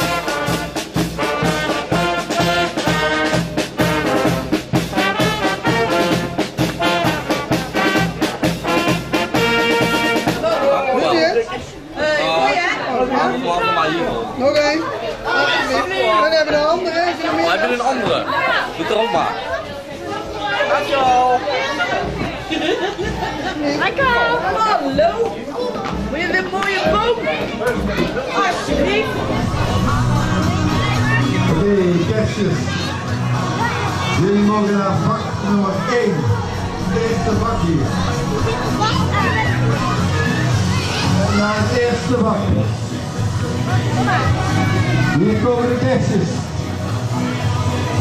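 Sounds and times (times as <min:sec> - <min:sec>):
upbeat brass music: 0:00.0 - 0:10.6, 0:34.0 - 0:46.3
crowd chattering: 0:00.0 - 0:48.0.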